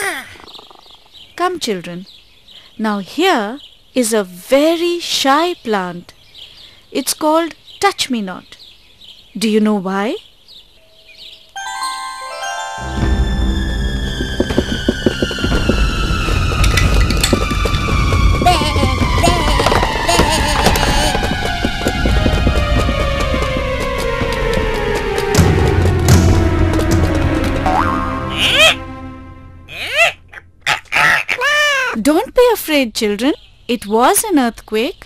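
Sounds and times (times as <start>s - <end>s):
long falling tone: 11.6s - 29.7s
tense music: 11.6s - 30.6s
deep rumble: 13.1s - 29.7s
rattling and clattering: 13.6s - 27.7s
animal calls: 14.4s - 25.5s, 29.7s - 32.0s.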